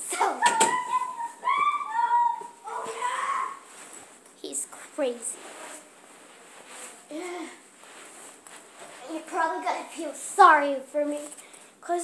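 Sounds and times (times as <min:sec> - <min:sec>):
high-pitched whining cry: 0:00.5 - 0:03.6.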